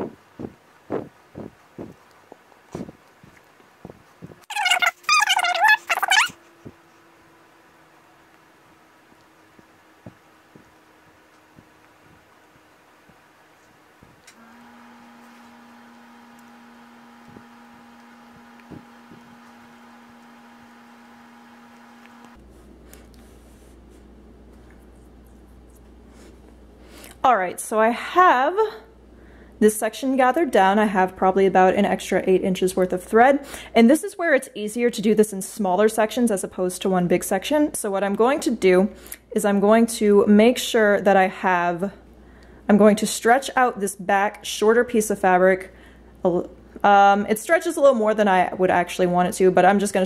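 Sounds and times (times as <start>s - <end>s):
steady two-tone hum: 6.3s - 34.3s.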